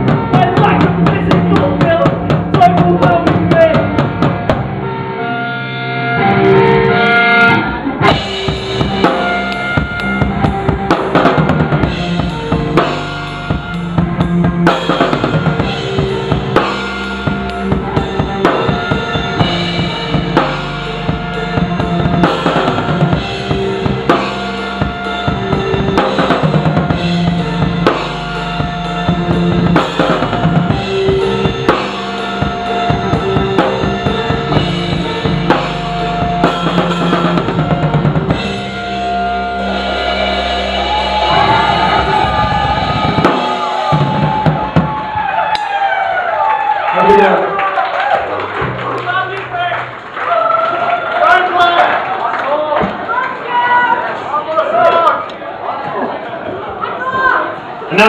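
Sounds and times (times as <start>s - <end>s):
live band playing: 0.0s - 55.6s
bass drum and snare beat: 8.0s - 38.8s, 40.6s - 45.2s.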